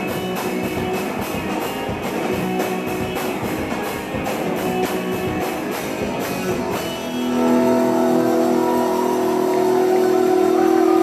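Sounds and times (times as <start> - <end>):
electric guitar sustained chord: 6.5 - 11.0.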